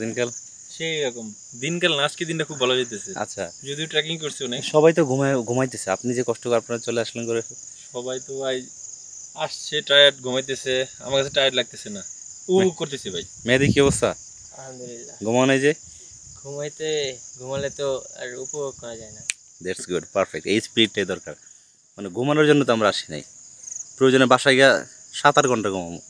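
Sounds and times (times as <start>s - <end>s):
men talking: 0.0s - 8.7s, 9.4s - 21.4s, 22.0s - 23.3s, 24.0s - 26.0s
insects chirring: 0.0s - 26.0s.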